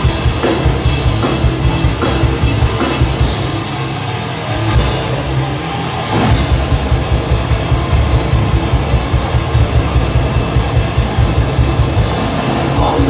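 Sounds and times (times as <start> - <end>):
death metal band playing: 0.0 - 13.0
distorted guitar and bass: 0.0 - 13.0.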